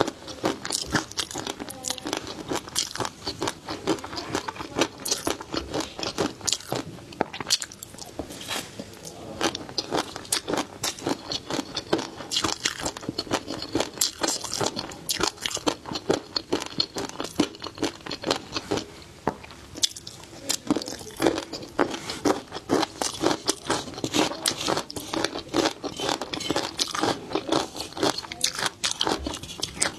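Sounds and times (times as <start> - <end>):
fish roe crunching while chewing: 0.0 - 29.9.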